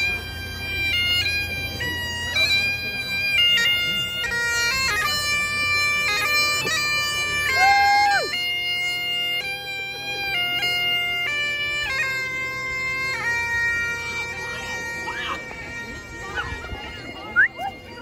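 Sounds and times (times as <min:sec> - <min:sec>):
bagpipes playing: 0:00.0 - 0:18.0.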